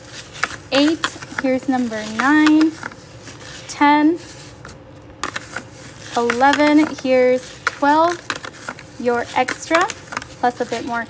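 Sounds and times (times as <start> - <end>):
rhinestones rattling in plastic tray: 5.2 - 11.0.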